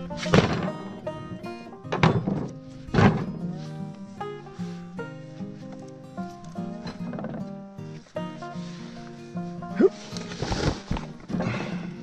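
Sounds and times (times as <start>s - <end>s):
log thunking on wooden deck: 0.0s - 3.4s
background music: 0.0s - 12.0s.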